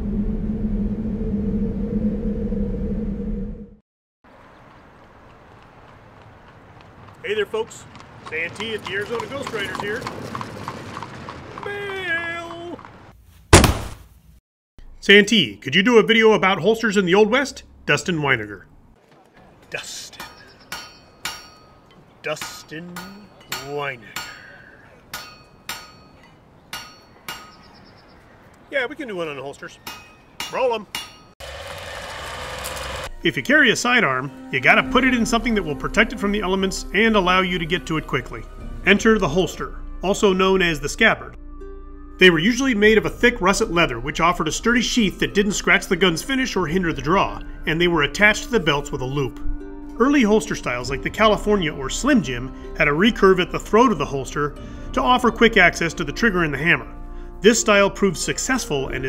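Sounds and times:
deep hum: 0:00.0 - 0:03.8
low rumbling drone: 0:00.0 - 0:03.8
sharp metallic clanks: 0:20.1 - 0:27.7, 0:29.8 - 0:31.4.

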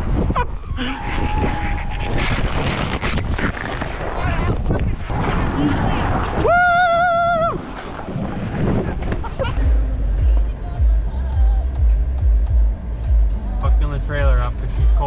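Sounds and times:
wind and snow rushing: 0:00.0 - 0:10.2
music with heavy bass beat: 0:09.6 - 0:15.0.

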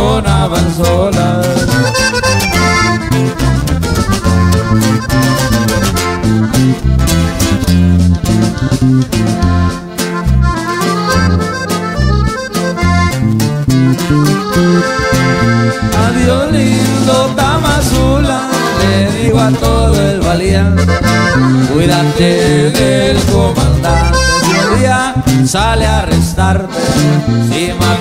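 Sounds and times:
accordion melody: 0:00.0 - 0:28.0
guitar strumming: 0:00.0 - 0:28.0
walking bass line: 0:00.0 - 0:28.0.

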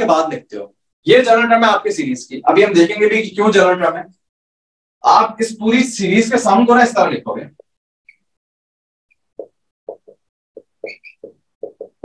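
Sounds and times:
pen knocking: 0:09.4 - 0:12.0
faint pen squeaks: 0:10.8 - 0:11.3.

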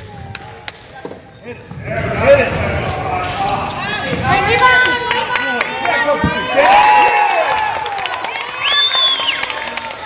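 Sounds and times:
shoe squeak: 0:01.0 - 0:01.7
crowd shouting and cheering: 0:01.5 - 0:10.0.

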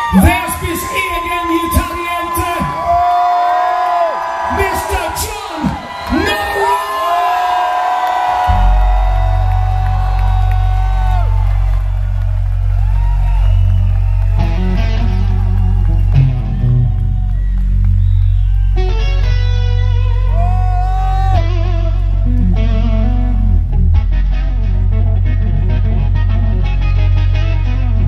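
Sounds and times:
electric guitar solo: 0:08.4 - 0:28.0
steady low drone: 0:08.5 - 0:28.0.

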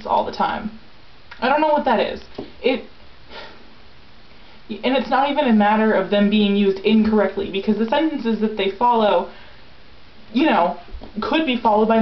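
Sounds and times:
woman speaking: 0:00.0 - 0:00.8, 0:01.4 - 0:02.9, 0:04.7 - 0:09.3, 0:10.3 - 0:12.0
person sniffing: 0:03.3 - 0:03.7.

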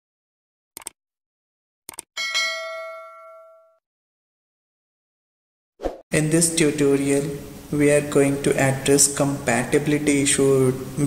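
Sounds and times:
bright bell ding: 0:02.2 - 0:03.8.

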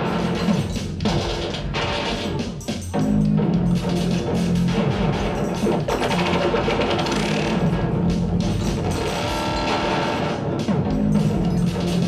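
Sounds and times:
drum-like percussion: 0:00.0 - 0:12.0
live electronic music: 0:00.0 - 0:12.0.

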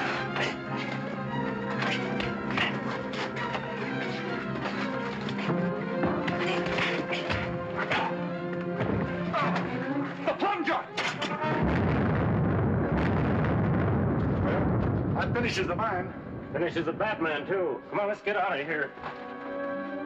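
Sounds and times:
orchestral film music: 0:00.0 - 0:20.0
fistfight blows and scuffling: 0:01.7 - 0:10.2
explosion: 0:11.4 - 0:17.2
dense steady rumble: 0:11.6 - 0:17.8.

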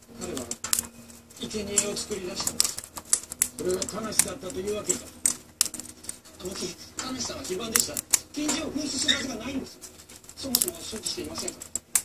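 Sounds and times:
birds cracking seed shells: 0:00.0 - 0:12.0
voices talking: 0:01.4 - 0:11.9.

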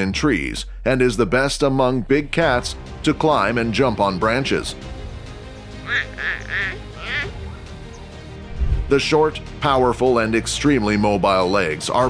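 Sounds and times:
quiet background music: 0:00.0 - 0:12.0
wavering animal calls: 0:05.3 - 0:08.3.

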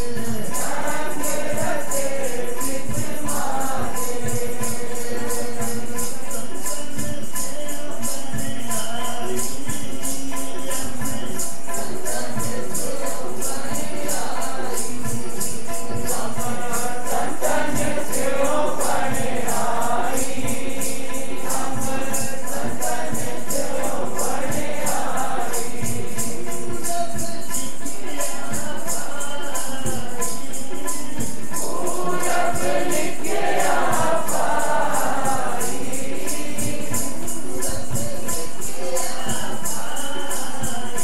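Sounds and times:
group singing: 0:00.0 - 0:41.0
jingling hand percussion: 0:00.0 - 0:41.0.

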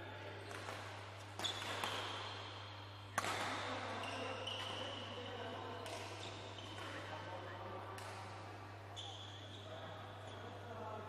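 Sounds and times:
racket hitting shuttlecock: 0:00.4 - 0:04.9.

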